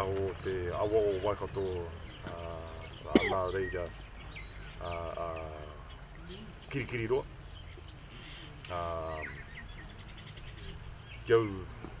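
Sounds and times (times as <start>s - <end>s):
bird trill: 0.0s - 11.8s
faint bird chirps: 0.0s - 11.9s
low outdoor background noise: 0.0s - 12.0s.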